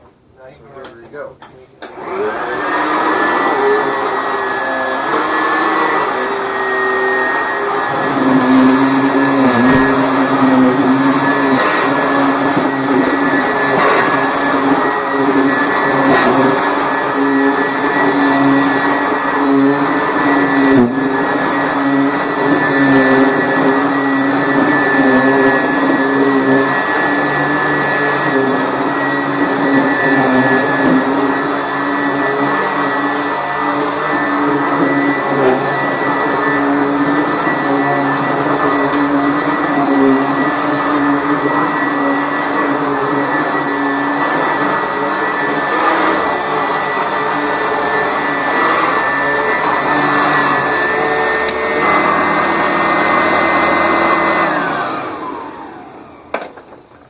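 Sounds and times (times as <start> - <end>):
vacuum cleaner motor whine: 1.8 - 57.0.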